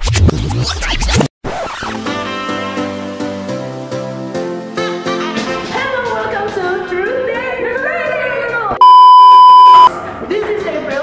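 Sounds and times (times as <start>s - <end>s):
censor bleep: 8.8s - 9.9s.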